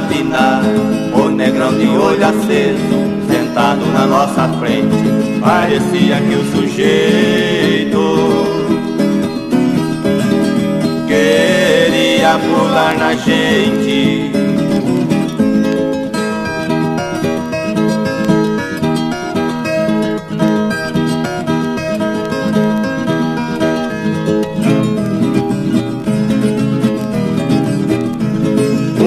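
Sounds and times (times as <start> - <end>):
plucked and strummed guitars: 0.0 - 29.0.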